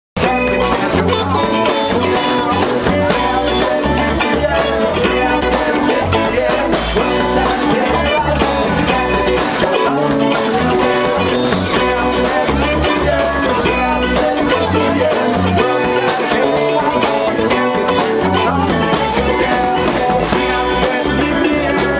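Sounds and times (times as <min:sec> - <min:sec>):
live band playing: 0:00.2 - 0:21.9.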